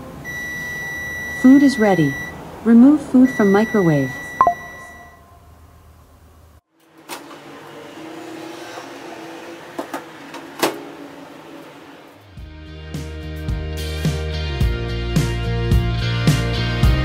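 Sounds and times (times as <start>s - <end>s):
low steady hum: 0.2s - 6.6s
background music: 12.4s - 17.0s.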